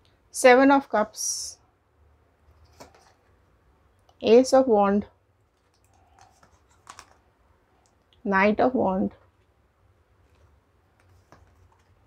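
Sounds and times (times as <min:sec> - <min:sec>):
cards laid on a table: 0:02.4 - 0:03.4, 0:05.4 - 0:08.1, 0:09.2 - 0:12.0.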